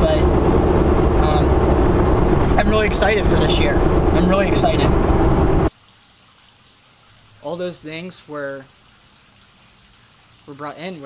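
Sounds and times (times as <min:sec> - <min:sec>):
car cabin road and engine noise: 0:00.0 - 0:05.7.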